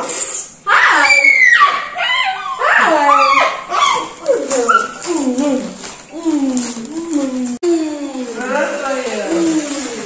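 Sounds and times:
small dog whining: 0:01.0 - 0:07.6.

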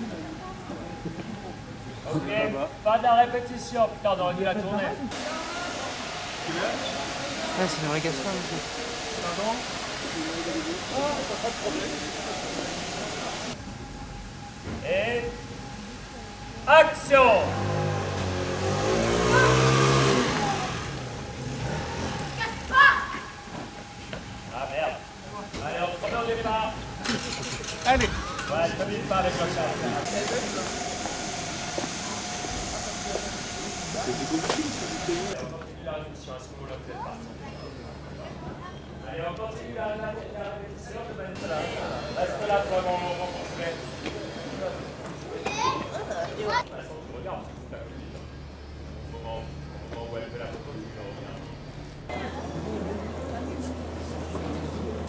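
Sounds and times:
people talking: 0:00.0 - 0:13.6, 0:24.5 - 0:48.3, 0:49.0 - 0:55.0
vehicle driving past: 0:17.1 - 0:23.3.

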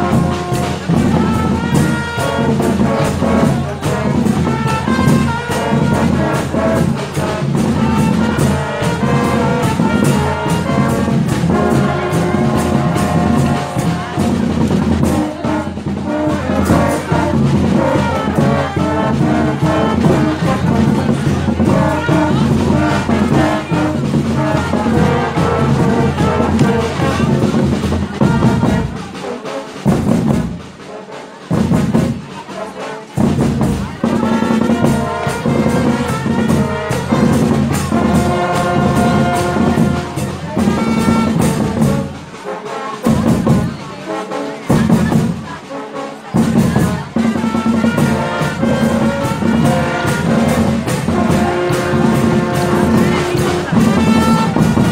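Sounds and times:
marching band brass music: 0:00.0 - 0:54.9.

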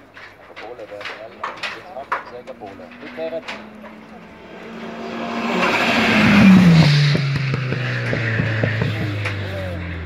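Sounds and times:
race car passing at speed: 0:01.7 - 0:10.0.

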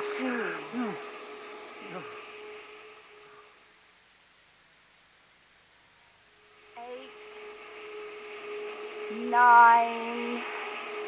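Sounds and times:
electric lift humming: 0:00.0 - 0:11.0
soft hiss: 0:00.0 - 0:11.0.

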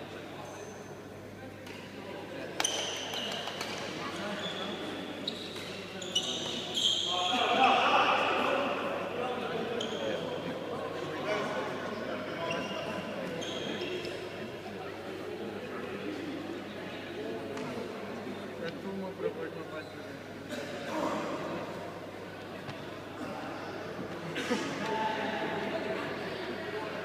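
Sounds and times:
people talking in echoing hall: 0:00.0 - 0:27.0.

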